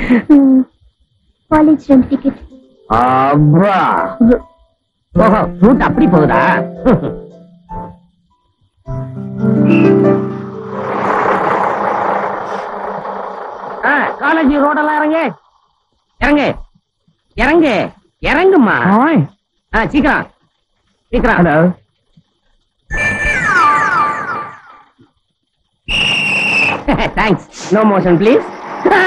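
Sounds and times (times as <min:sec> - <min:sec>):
tones sliding downward: 0:09.3 - 0:15.3
shrill whistle-like tone: 0:09.4 - 0:11.1, 0:25.9 - 0:26.9
bus engine and road noise: 0:09.7 - 0:15.0, 0:27.6 - 0:29.0.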